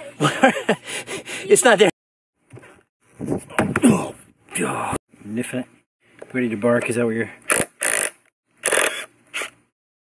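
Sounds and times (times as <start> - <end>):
cordless drill driving screw: 7.5 - 9.6.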